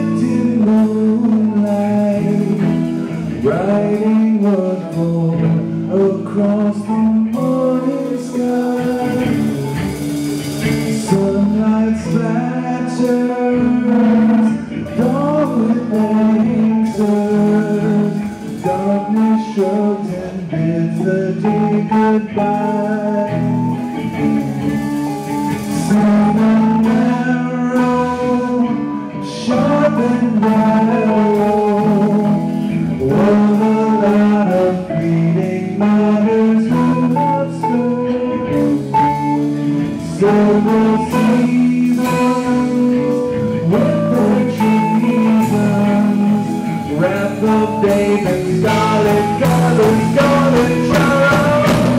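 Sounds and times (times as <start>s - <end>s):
blues rock band playing: 0.0s - 51.9s.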